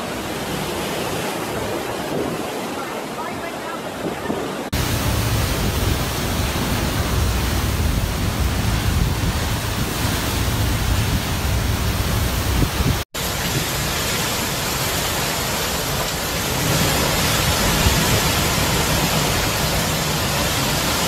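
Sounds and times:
hurricane wind: 0.0 - 21.0
wind rumble on microphone: 1.1 - 14.3
driving rain: 4.1 - 21.0.

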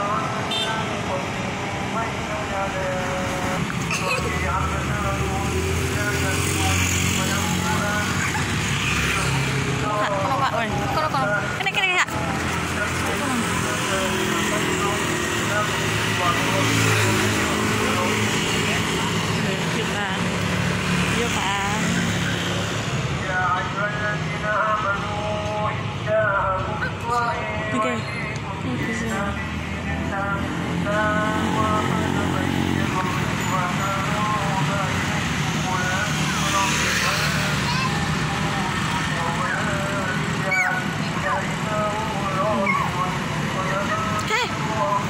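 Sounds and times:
people talking: 0.0 - 12.2, 12.8 - 20.3, 21.2 - 22.5, 23.2 - 45.0
vehicle engines running: 0.0 - 45.0.

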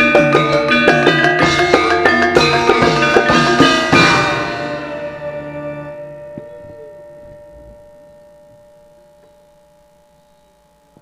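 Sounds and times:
gamelan tones ringing: 0.0 - 11.0.

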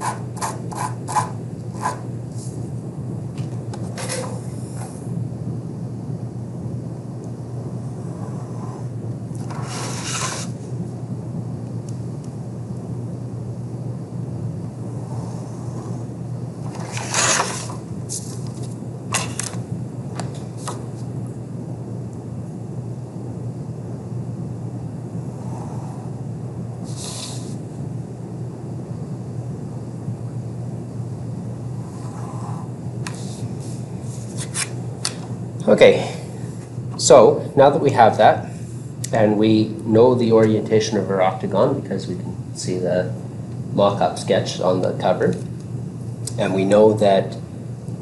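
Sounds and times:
steel ruler scraping paper: 0.0 - 2.0, 9.5 - 10.6, 16.8 - 18.2
steady low hum: 0.0 - 48.0.

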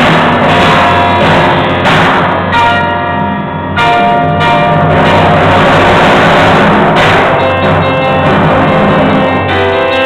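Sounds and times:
grand piano: 0.0 - 10.0
timpani drum: 0.0 - 10.0.

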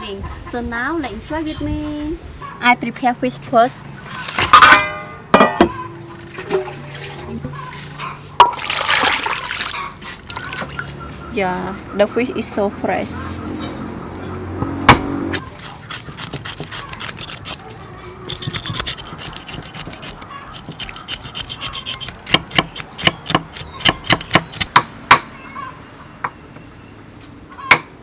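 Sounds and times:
knife scraping fish scales: 15.4 - 24.7.

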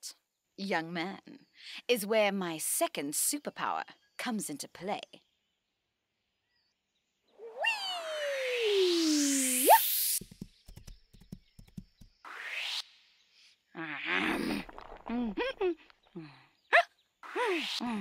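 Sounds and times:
falling slide whistle tone: 7.4 - 10.2.

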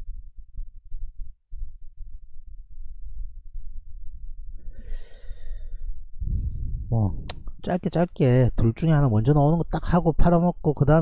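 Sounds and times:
low rumble: 6.0 - 7.8.

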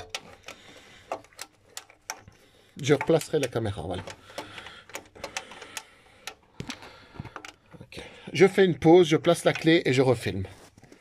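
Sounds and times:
hand tools clicking and knocking: 0.0 - 10.2.

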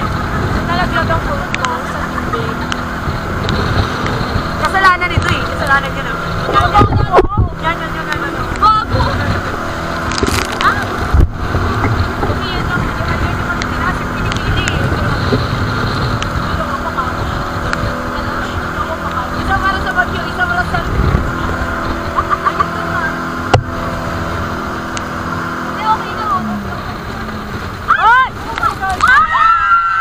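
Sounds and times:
boat engine running: 0.0 - 30.0
heavy wind: 0.0 - 30.0
rough sea water: 0.0 - 30.0
voices calling out: 0.0 - 30.0.

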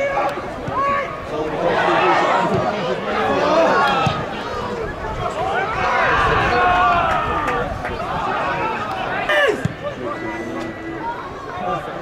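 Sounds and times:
football crowd shouting: 0.0 - 12.0.

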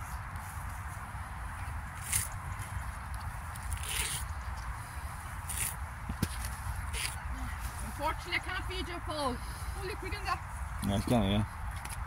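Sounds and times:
grass tearing from turf: 1.9 - 8.0.

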